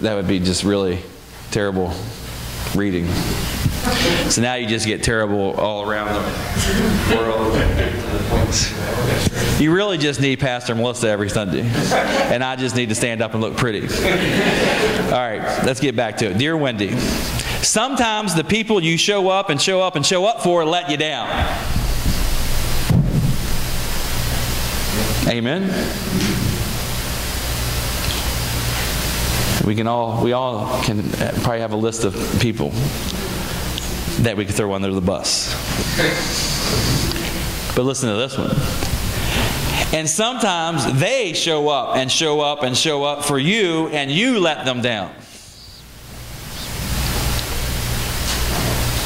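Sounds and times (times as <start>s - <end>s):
low electrical hum: 0.0s - 49.0s
steady hiss: 0.0s - 49.0s
low hum: 21.2s - 29.8s.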